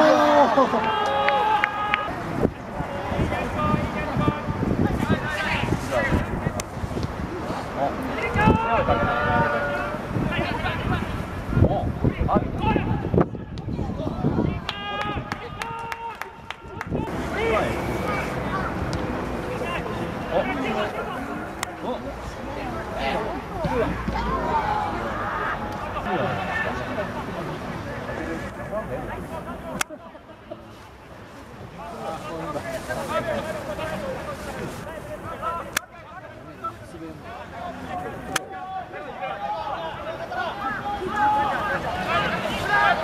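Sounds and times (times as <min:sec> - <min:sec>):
drawn-out shouts: 0:00.0 - 0:04.2, 0:08.0 - 0:11.6, 0:23.2 - 0:26.8, 0:37.2 - 0:43.0
players shouting: 0:00.0 - 0:06.2, 0:07.9 - 0:30.5, 0:31.8 - 0:43.0.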